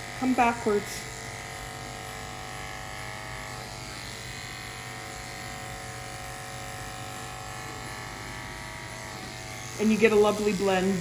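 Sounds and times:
electric clipper humming: 0.0s - 11.0s.

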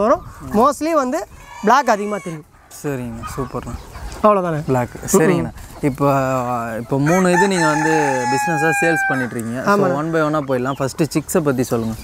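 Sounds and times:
chickens calling: 0.0s - 12.0s
man talking: 0.0s - 12.0s.

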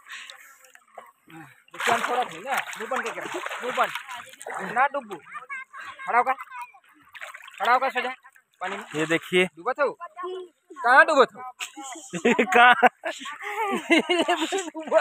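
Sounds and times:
water splashing and sloshing: 0.0s - 9.7s
hand slapping water: 1.7s - 5.3s
people talking: 11.6s - 15.0s.

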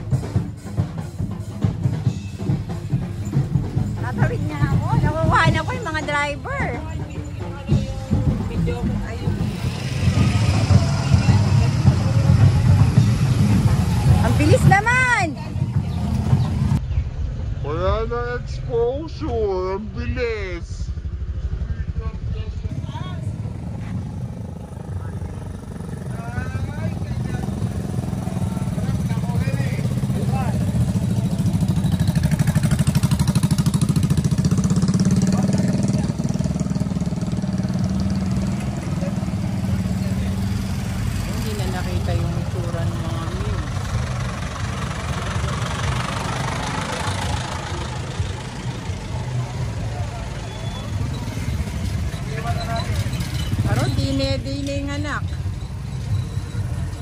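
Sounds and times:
motorcycle engines passing: 0.0s - 57.0s.

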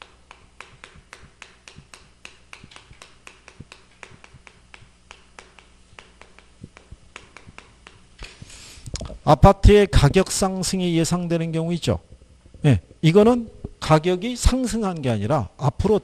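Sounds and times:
chalk tapping on chalkboard: 0.0s - 8.6s.

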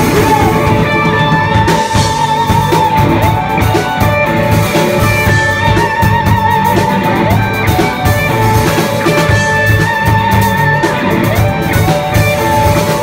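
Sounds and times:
drum kit: 0.0s - 13.0s
electric guitar wavering high note: 0.0s - 13.0s.

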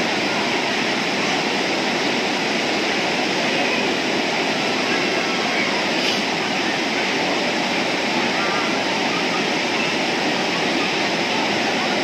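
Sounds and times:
water rushing over rapids: 0.0s - 12.0s.

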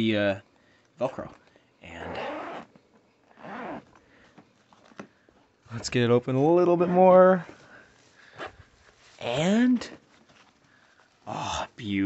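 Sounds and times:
zipper being pulled open: 2.0s - 2.7s, 3.3s - 4.0s.

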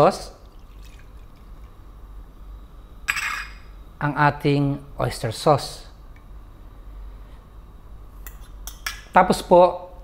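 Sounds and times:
low room hum: 0.0s - 10.0s
glass bowl clink: 3.1s - 3.7s.

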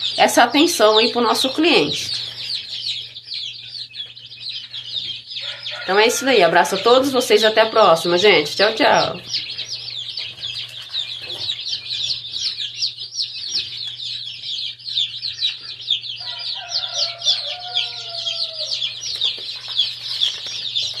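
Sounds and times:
chicks peeping: 0.0s - 21.0s.

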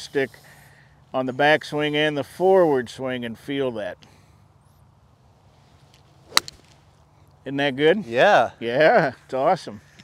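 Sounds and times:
golf club striking ball: 6.3s - 6.8s.

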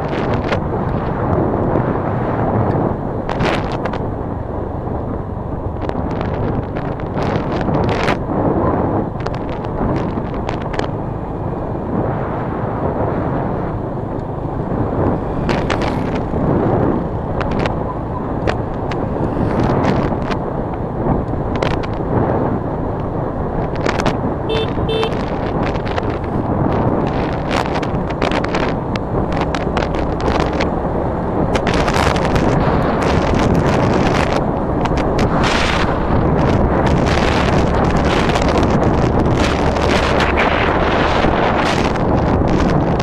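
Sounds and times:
tyres on road: 0.0s - 43.0s
wind buffeting microphone: 0.0s - 43.0s
crackles: 2.6s - 4.1s, 5.8s - 8.2s, 9.2s - 11.0s, 14.9s - 22.1s, 23.0s - 43.0s.

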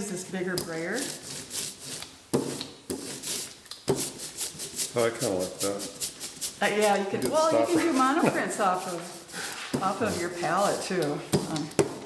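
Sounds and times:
ink roller hissing: 0.4s - 12.0s.

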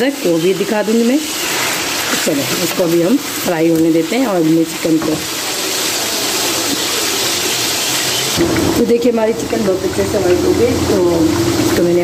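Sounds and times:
chicken sizzling in hot oil: 0.0s - 12.0s.

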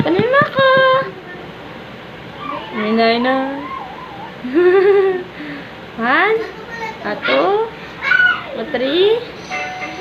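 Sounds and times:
laughter: 4.5s - 5.3s.

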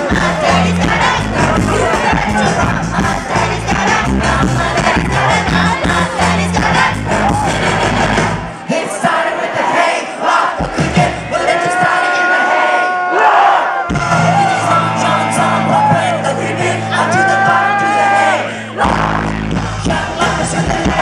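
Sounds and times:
male and female vocals: 0.0s - 7.7s, 14.2s - 21.0s
live rock band: 0.0s - 8.6s, 13.9s - 21.0s
crowd shouting and singing: 0.0s - 21.0s.

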